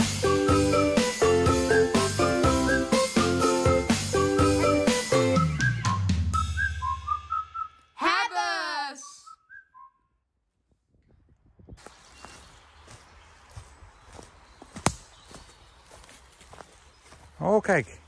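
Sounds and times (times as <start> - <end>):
whistled jingle: 1.5 - 10.2
footsteps through dry leaves: 11.8 - 18.0
twig snap: 14.7 - 15.4.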